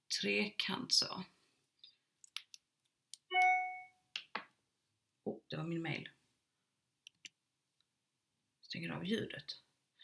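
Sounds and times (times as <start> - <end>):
notification chime ding: 3.3 - 3.9.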